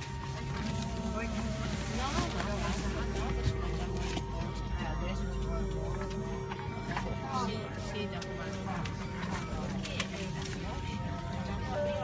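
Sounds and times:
airliner cabin drone: 0:00.0 - 0:12.0
faint voices: 0:00.0 - 0:12.0.

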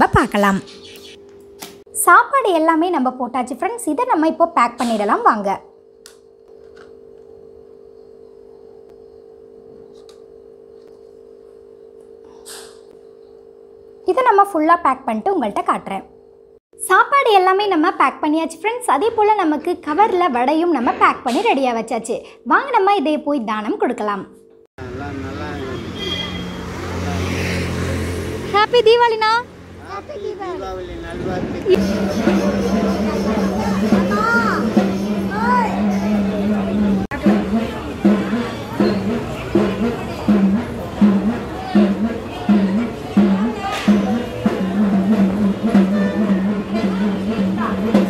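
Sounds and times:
road noise: 0:24.8 - 0:48.0
vehicle engine running: 0:24.8 - 0:48.0
steady low hum: 0:28.6 - 0:48.0.

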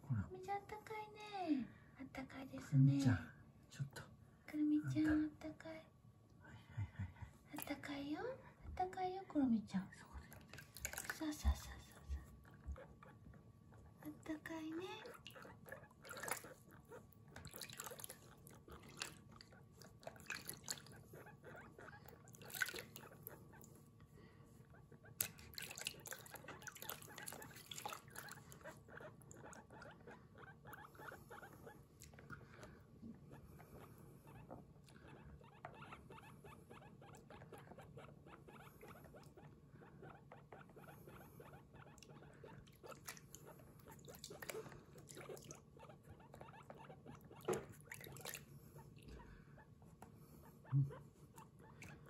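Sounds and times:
water splashing: 0:10.6 - 0:11.3, 0:16.0 - 0:16.6, 0:17.4 - 0:19.3, 0:20.0 - 0:21.0, 0:22.4 - 0:23.1, 0:25.2 - 0:28.5
guinea pig squeaking: 0:12.0 - 0:23.8, 0:24.7 - 0:31.8, 0:33.3 - 0:49.8, 0:50.4 - 0:52.0.

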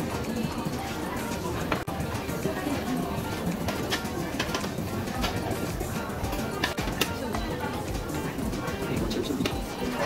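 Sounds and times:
background music: 0:00.0 - 0:10.0
chopsticks and dishes clicking: 0:03.6 - 0:05.6, 0:06.3 - 0:07.4.

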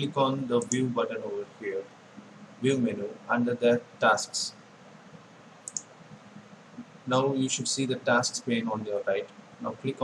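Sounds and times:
faint room hiss: 0:00.0 - 0:10.0
computer mouse click: 0:00.6 - 0:00.9, 0:05.6 - 0:05.9.

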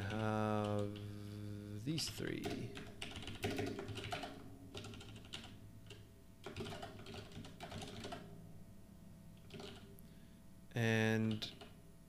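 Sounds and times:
typing on computer keyboard: 0:00.0 - 0:01.0, 0:02.3 - 0:08.3, 0:09.4 - 0:09.9.

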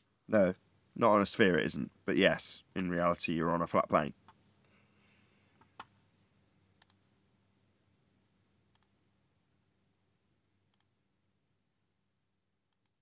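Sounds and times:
faint clicks: 0:06.8 - 0:07.0, 0:08.7 - 0:08.9, 0:10.7 - 0:10.9, 0:12.7 - 0:13.0.

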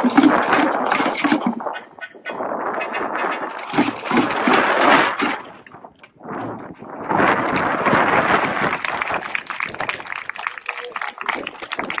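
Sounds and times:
people clapping: 0:07.5 - 0:12.0
crowd din: 0:08.0 - 0:12.0.

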